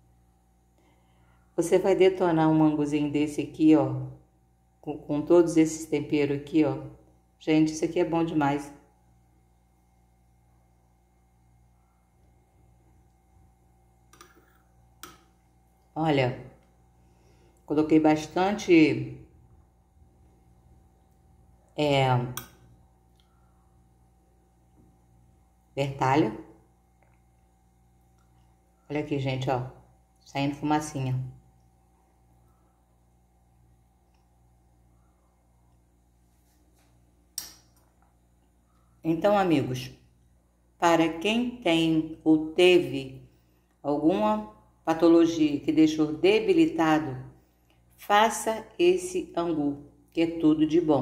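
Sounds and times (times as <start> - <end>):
faint steady hum: 0.0 - 51.0
metal spoon clicking against bowl: 22.4 - 22.6.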